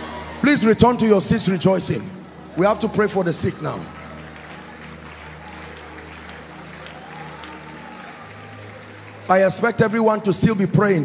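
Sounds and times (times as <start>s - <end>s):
soft background music: 0.0s - 11.0s
congregation clapping and stirring: 2.0s - 11.0s.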